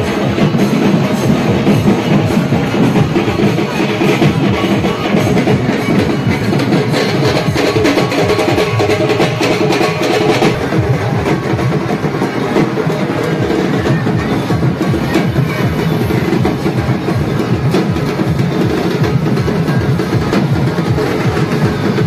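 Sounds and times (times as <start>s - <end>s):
music with rapid drumming: 0.0s - 22.0s.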